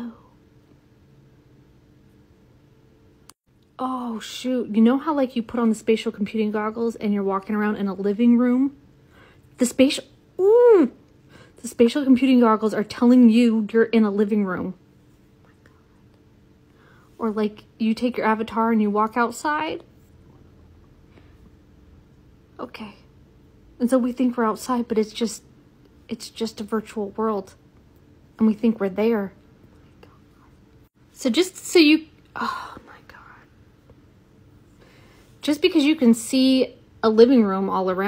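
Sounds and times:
faint steady hum: 0:00.0 - 0:38.0
woman whispering: 0:15.4 - 0:16.2, 0:29.8 - 0:30.6, 0:32.3 - 0:33.6.

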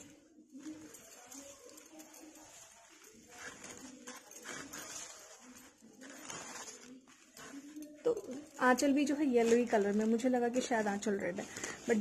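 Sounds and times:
fabric rustling and swishing: 0:00.0 - 0:12.0.

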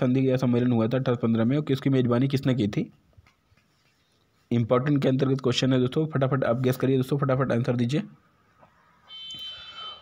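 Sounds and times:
high alarm buzzer tone: 0:09.1 - 0:10.0.

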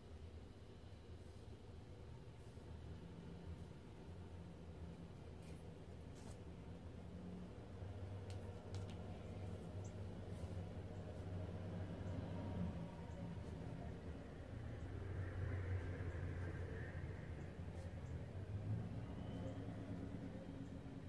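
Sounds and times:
low steady hum: 0:00.0 - 0:21.0
faint light ticks: 0:08.2 - 0:09.1.

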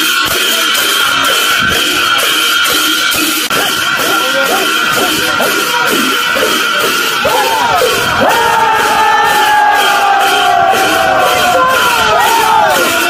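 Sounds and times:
music with a steady beat: 0:00.0 - 0:13.0
group of voices singing: 0:06.4 - 0:13.0.

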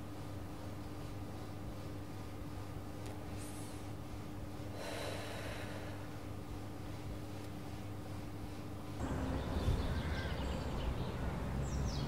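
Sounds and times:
woman exhaling smoke: 0:04.7 - 0:06.1.

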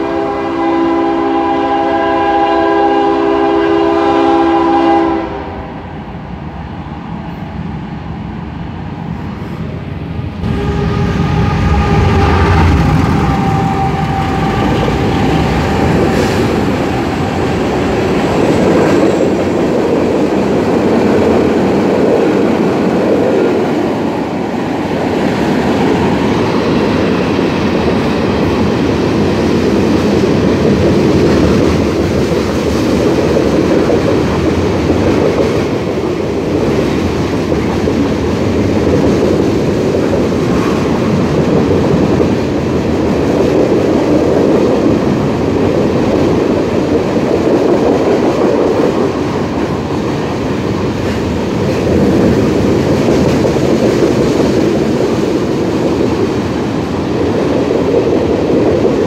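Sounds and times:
train wheels rumbling on rail: 0:00.0 - 0:59.0
humming tone: 0:10.4 - 0:19.1.

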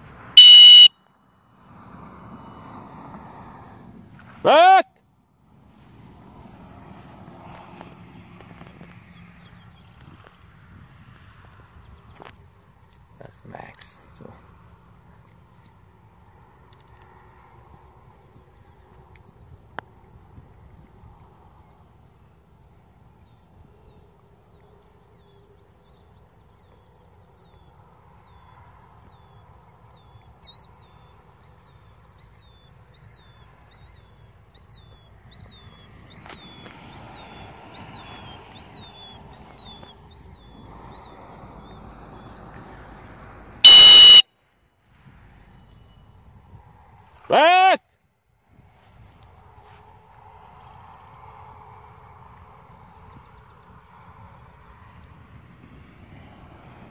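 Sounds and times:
bird chirping: 0:00.4 - 0:00.9, 0:22.9 - 0:42.3, 0:43.6 - 0:44.2
dog whistle blast: 0:00.4 - 0:00.9, 0:43.6 - 0:44.2.

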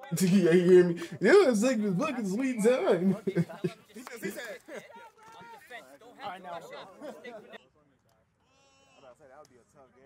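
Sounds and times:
distant voices calling out: 0:00.0 - 0:04.4
drawn-out shout: 0:00.0 - 0:04.7.

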